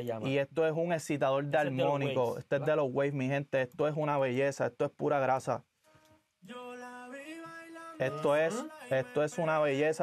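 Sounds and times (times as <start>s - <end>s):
person singing reggaeton vocal: 6.4s - 10.0s.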